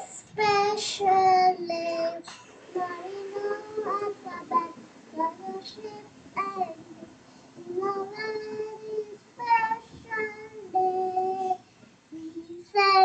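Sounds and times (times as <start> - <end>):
girl singing: 0.0 - 13.0.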